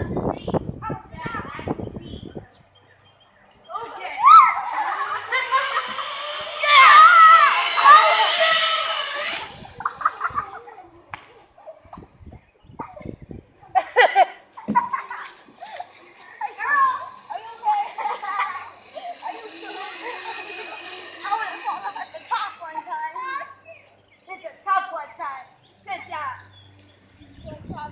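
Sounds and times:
distant children calling out: 3.6s - 12.1s, 15.8s - 26.6s
child laughing loudly: 4.2s - 10.7s.

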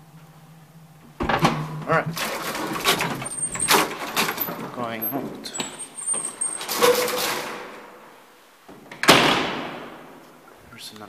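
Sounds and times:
elevator door slamming: 1.2s - 8.2s, 8.8s - 10.3s
metallic gate rattle: 1.3s - 8.2s.

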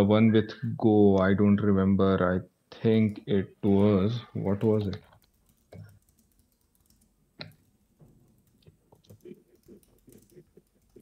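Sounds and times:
typing on computer keyboard: 5.2s - 11.0s.

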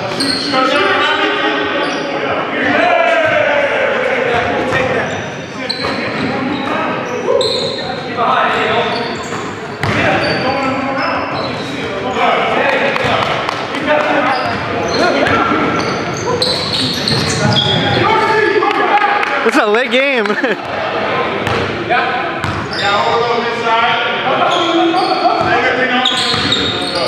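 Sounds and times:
sneaker squeaks: 0.0s - 1.0s, 1.7s - 2.2s, 4.4s - 12.4s, 14.1s - 18.3s, 22.4s - 23.3s, 24.4s - 27.0s
players calling out: 0.1s - 23.5s
basketball bouncing: 22.4s - 22.7s.

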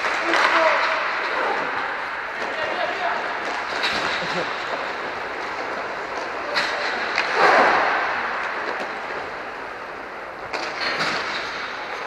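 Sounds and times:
inline skate wheels rolling: 0.0s - 12.0s.

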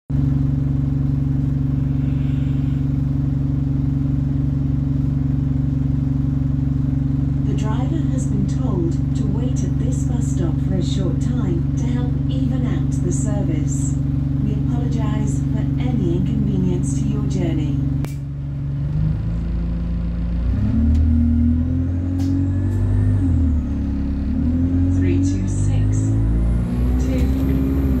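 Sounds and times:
bus engine humming: 0.1s - 28.0s.

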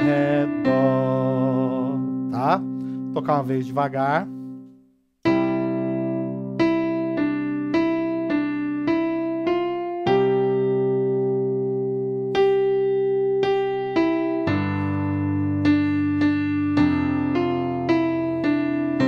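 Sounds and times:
keyboard piano hymn melody: 0.0s - 19.0s.

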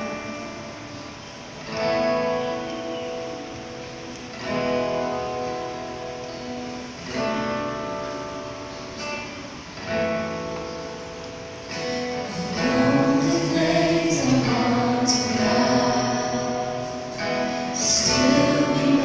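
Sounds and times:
band playing guitar chords: 0.0s - 19.0s.

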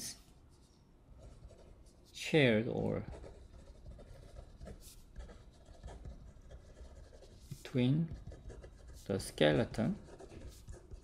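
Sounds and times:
pen scratching on paper: 1.2s - 1.8s, 2.9s - 11.0s.

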